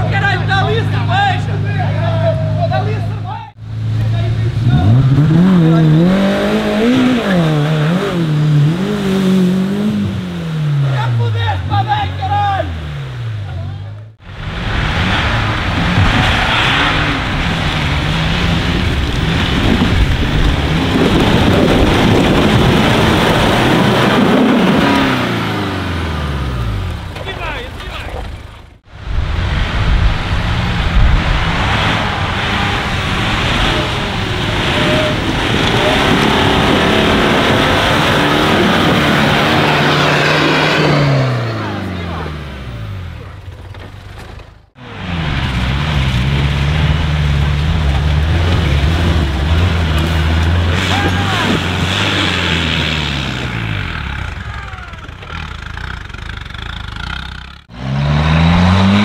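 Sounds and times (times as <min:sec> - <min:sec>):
off-road engines revving: 0:00.0 - 0:59.0.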